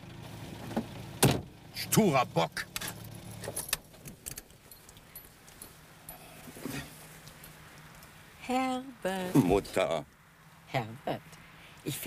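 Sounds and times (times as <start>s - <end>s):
light metallic clicks and jingles: 2.7s - 8.2s.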